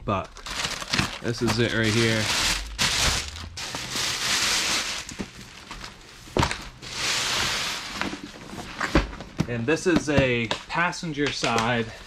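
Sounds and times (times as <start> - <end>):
plastic wrapping rustling: 0.1 - 9.0.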